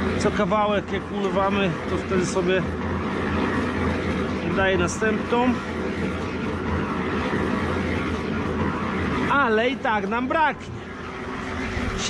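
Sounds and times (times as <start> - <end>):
concrete mixer running: 0.0 - 12.0.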